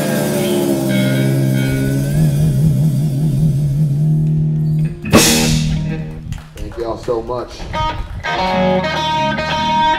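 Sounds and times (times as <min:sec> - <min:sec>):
blues-rock band sustained chord: 0:00.0 - 0:06.3.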